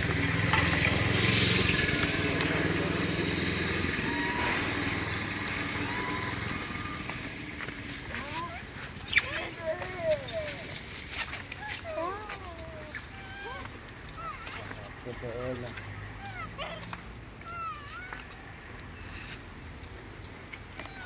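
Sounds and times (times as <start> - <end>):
monkey squeaking: 1.5 - 2.9, 3.6 - 7.3, 8.1 - 18.4, 20.8 - 21.0.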